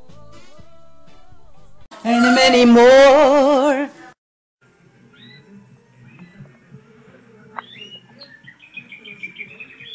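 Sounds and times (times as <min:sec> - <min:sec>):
canary chirping and twittering: 0:05.1 - 0:06.7, 0:07.6 - 0:09.9.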